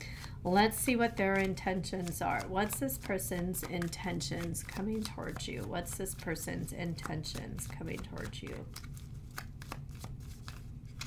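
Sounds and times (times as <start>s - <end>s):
cards being shuffled: 0.1s - 11.0s.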